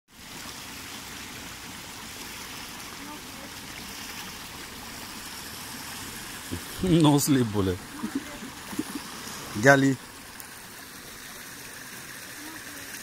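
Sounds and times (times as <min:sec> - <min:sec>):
stream water rushing over rock: 0:00.1 - 0:13.0.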